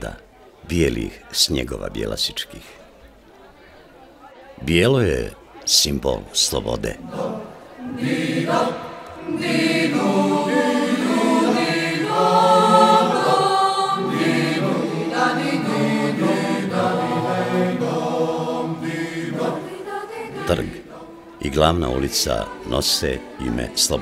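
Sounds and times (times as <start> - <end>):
choir singing held chords: 6.0 - 24.0.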